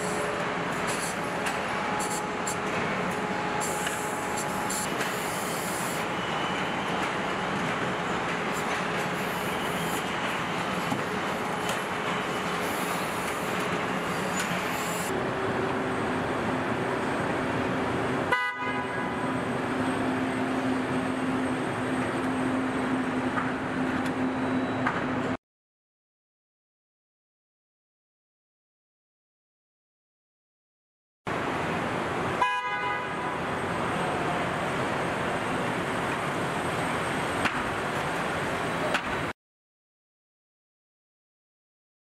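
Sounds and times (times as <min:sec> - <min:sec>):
factory machinery noise: 0:00.0 - 0:25.4, 0:31.3 - 0:39.3
short pitched beep: 0:24.3 - 0:24.8.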